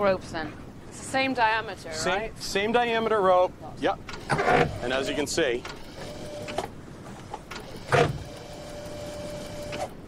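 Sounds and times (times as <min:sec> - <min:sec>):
hydraulic hauler whine: 0:04.2 - 0:06.7.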